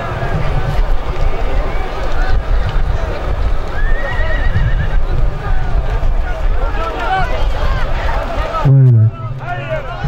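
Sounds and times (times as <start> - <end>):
steady low rumble: 8.6 - 10.0.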